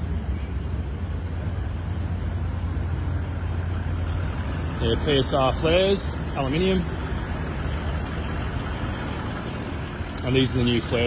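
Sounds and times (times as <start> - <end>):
engine idling: 0.0 - 11.0.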